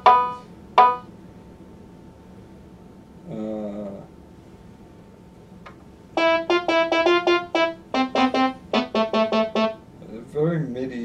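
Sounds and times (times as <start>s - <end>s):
synthesizer keyboard short notes: 6.2s - 9.8s.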